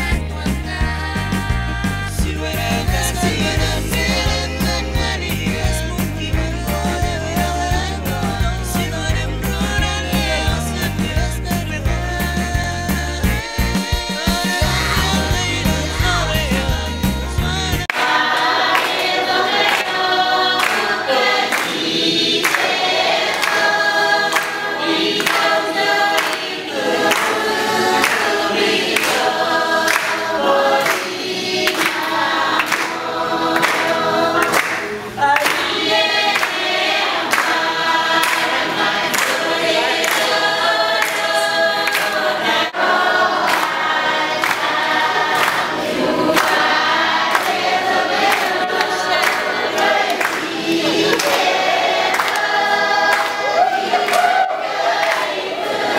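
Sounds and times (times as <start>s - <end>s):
choir singing in harmony: 0.0s - 55.9s.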